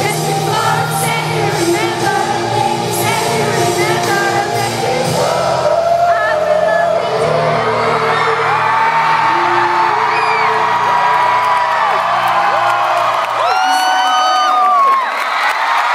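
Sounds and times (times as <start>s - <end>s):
crowd whooping and singing along: 0.0s - 15.9s
live concert music: 0.0s - 15.9s.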